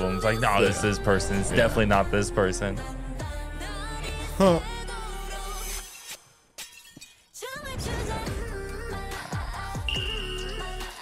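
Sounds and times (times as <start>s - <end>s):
background music: 0.0s - 6.6s, 7.4s - 11.0s.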